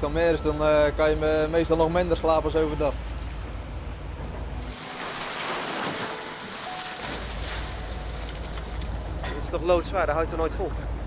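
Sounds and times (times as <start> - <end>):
boat engine drone: 0.0 - 9.3
seawater rushing and splashing: 1.4 - 9.1.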